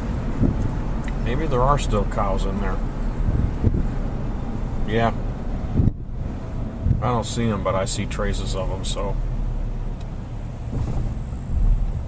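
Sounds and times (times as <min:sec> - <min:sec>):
wind noise on microphone: 0:00.0 - 0:01.1, 0:02.7 - 0:07.2, 0:10.2 - 0:12.0
car engine and road rumble: 0:00.0 - 0:12.0
man speaking: 0:01.2 - 0:02.8, 0:04.8 - 0:05.2, 0:07.0 - 0:09.2.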